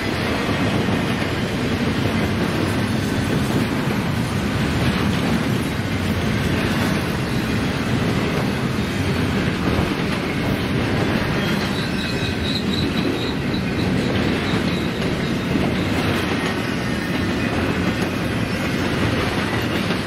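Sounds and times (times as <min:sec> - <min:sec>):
steel wheels rumbling on rail: 0:00.0 - 0:20.0
wheels clacking over rail joints: 0:00.0 - 0:20.0
high wheel squeal: 0:11.2 - 0:17.7.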